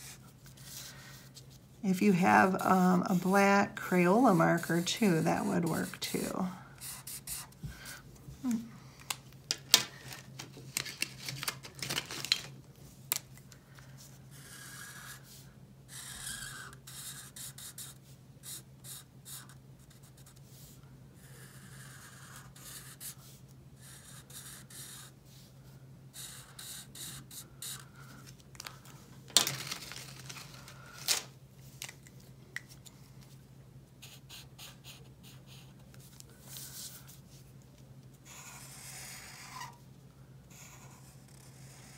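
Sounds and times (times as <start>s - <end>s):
marker scratching on paper: 2.1s - 6.2s, 6.8s - 7.6s, 14.3s - 20.6s, 21.2s - 25.1s, 26.2s - 27.8s, 34.0s - 35.8s, 38.3s - 39.8s, 40.5s - 41.9s
paper sounds: 9.8s - 12.6s, 27.0s - 32.0s.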